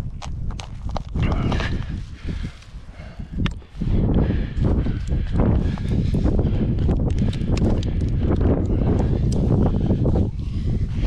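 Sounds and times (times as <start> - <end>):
hands and shoes scraping rock: 0.1 - 2.0
sharp clicks: 6.9 - 9.4.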